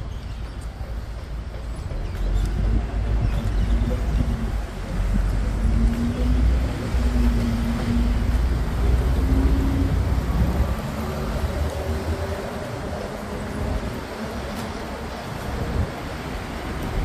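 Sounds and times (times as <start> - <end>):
road traffic passing: 0.0 - 17.0
vehicle engine rumbling: 0.7 - 17.0.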